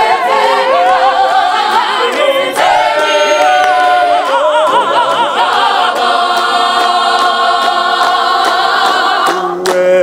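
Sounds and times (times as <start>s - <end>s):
gospel choir singing: 0.0s - 10.0s
hand claps: 1.2s - 9.9s.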